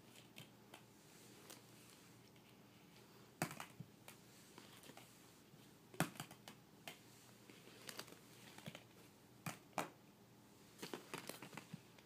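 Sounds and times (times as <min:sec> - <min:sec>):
plastic balls knocking together: 0:03.4 - 0:03.8, 0:05.9 - 0:07.0.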